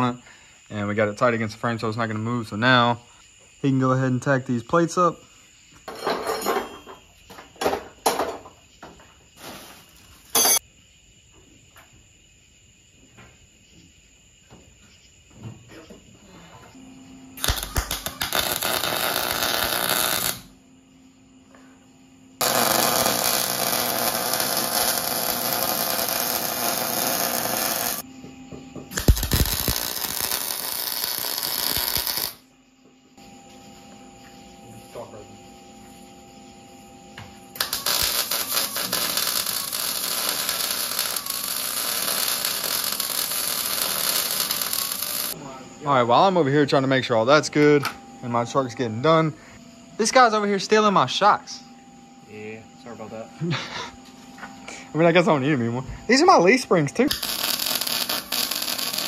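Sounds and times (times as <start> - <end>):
welder arc crackling: 17.4 - 20.5, 22.4 - 28.0, 28.9 - 32.4, 37.6 - 45.4, 57.0 - 59.0.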